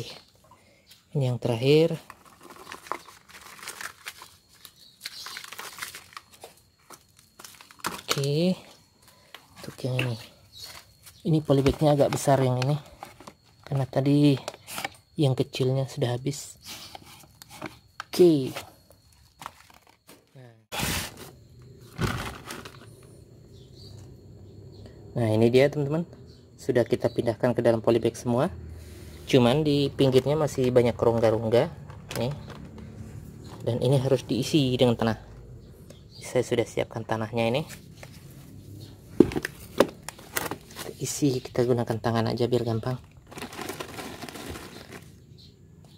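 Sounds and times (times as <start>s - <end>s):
plastic bag crinkling: 2.0s - 8.5s, 43.0s - 45.2s
plastic bucket knocking: 39.2s - 40.0s.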